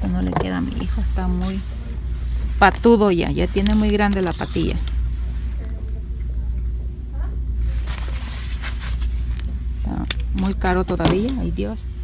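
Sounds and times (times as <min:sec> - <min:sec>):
low shop rumble: 0:00.0 - 0:12.0
clothes rustling: 0:07.6 - 0:11.8.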